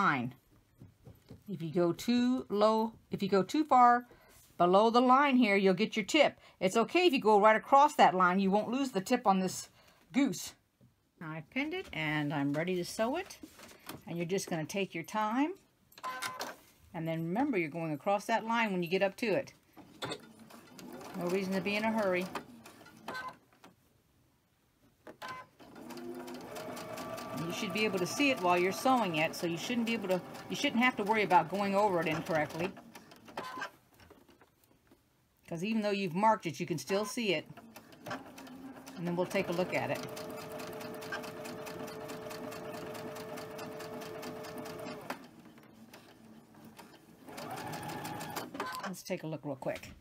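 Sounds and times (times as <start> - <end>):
sewing machine stitching: 19.8 - 23.4, 25.2 - 34.4, 36.8 - 49.0.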